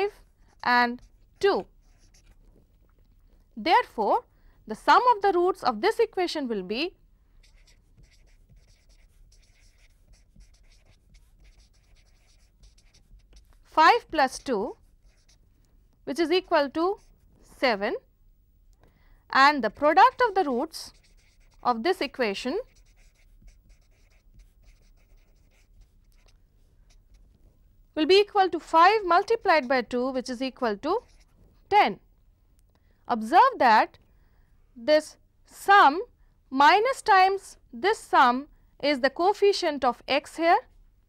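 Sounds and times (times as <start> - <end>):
marker scratching on paper: 0.0 - 2.6, 7.4 - 17.9, 19.5 - 31.8.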